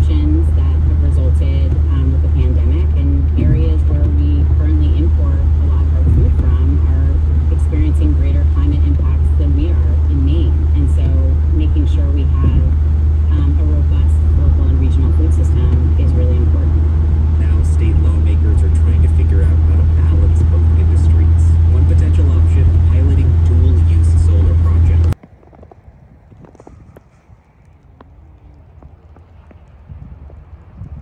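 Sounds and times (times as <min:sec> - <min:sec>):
muffled voices: 0:00.0 - 0:25.2
car driving on wet highway: 0:00.0 - 0:31.0.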